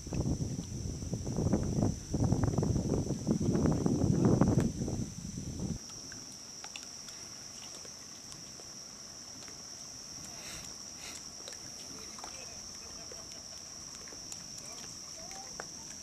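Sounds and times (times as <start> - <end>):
low rumbling noise: 0.0 - 6.0
crickets chirring: 0.0 - 16.0.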